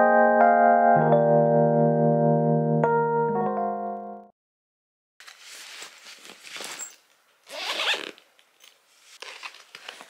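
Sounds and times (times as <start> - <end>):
bags and fabric rustling: 5.2 - 10.0
zipper rasping: 7.5 - 8.2.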